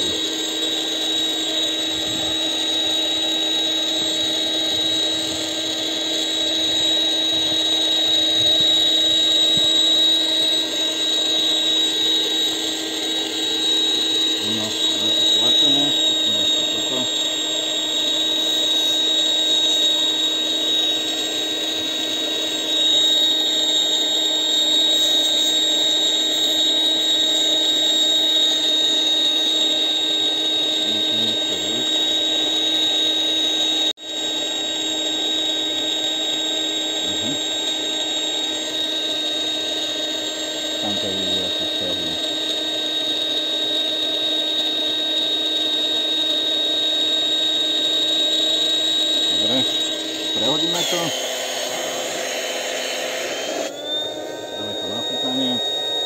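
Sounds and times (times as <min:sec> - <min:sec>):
air pump motor humming and whining: 0:00.0 - 0:56.0.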